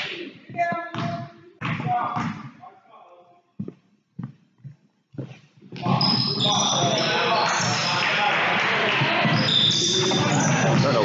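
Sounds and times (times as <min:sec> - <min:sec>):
basketball bouncing on wooden floor: 0:00.5 - 0:02.5
shoes squeaking on court: 0:03.6 - 0:07.9, 0:09.2 - 0:11.0.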